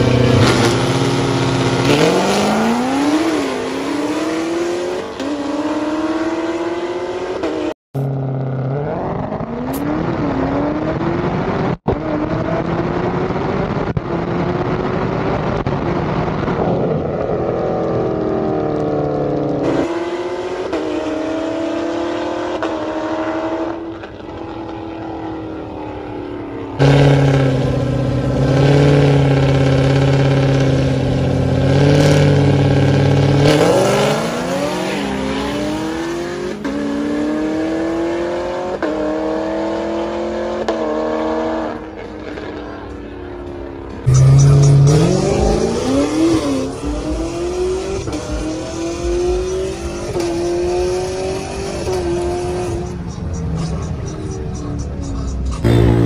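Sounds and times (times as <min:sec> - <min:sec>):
drag racing car engines revving: 0:00.0 - 0:56.0.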